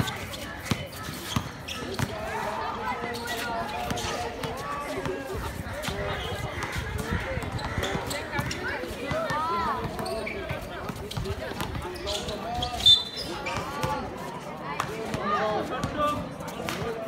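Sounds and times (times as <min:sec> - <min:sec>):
basketball bouncing on court: 0:00.0 - 0:02.2, 0:05.8 - 0:11.9.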